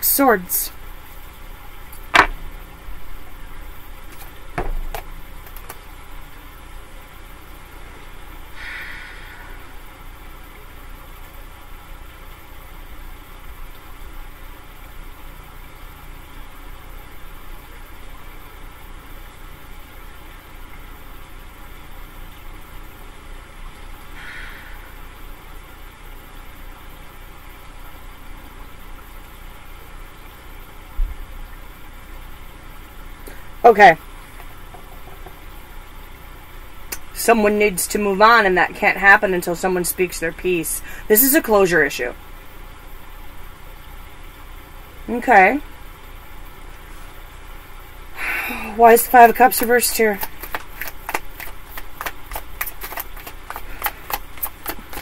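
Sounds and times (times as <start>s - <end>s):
low machine hum: 0.0s - 55.0s
soft thump: 4.6s - 4.9s
faint hisses: 7.8s - 11.4s, 46.6s - 49.0s.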